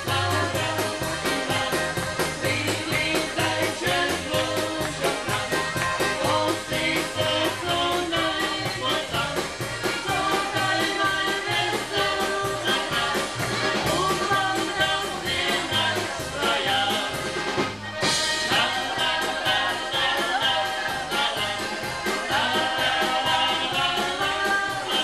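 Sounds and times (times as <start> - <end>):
polka band playing: 0.0 - 25.0.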